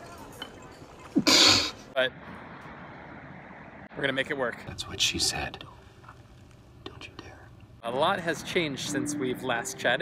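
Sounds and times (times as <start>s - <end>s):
distant city traffic hum: 0.0s - 10.0s.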